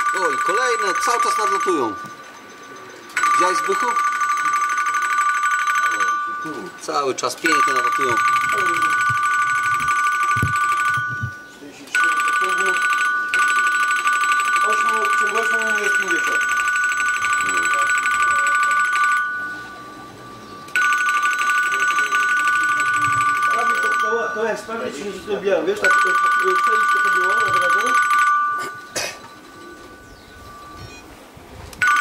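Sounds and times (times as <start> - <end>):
warbling telephone ring: 0.0 - 31.2, 31.8 - 32.0
muffled voices talking: 14.5 - 20.7, 21.4 - 28.0.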